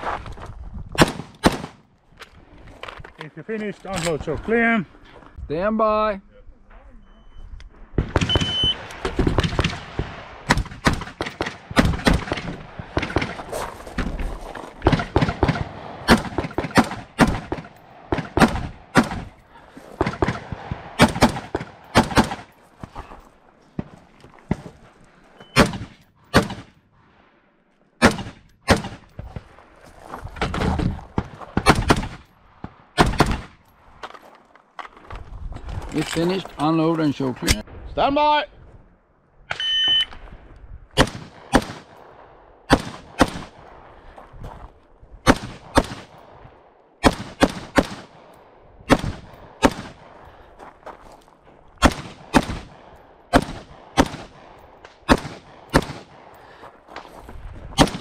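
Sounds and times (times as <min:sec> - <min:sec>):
rifle shots: 0:01.0 - 0:01.8, 0:08.0 - 0:13.5, 0:14.8 - 0:19.4, 0:20.0 - 0:22.5, 0:25.6 - 0:26.8, 0:28.0 - 0:29.1, 0:30.4 - 0:32.3, 0:32.9 - 0:33.6, 0:41.0 - 0:43.7, 0:45.2 - 0:50.2, 0:51.8 - 0:56.3, 0:57.8 - 0:58.0
shot timer beep: 0:08.3 - 0:08.8, 0:39.5 - 0:40.1.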